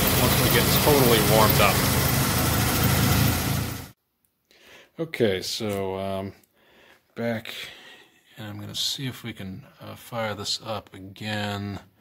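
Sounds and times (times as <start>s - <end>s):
car engine idling: 0.0s - 4.0s.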